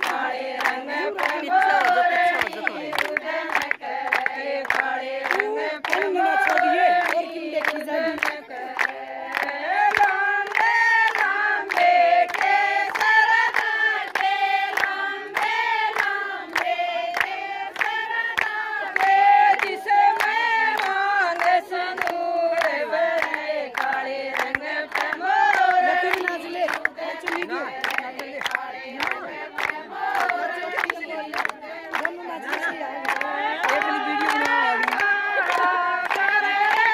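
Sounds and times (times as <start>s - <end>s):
rhythmic hand clapping: 0.0s - 36.9s
women singing in unison: 0.0s - 36.9s.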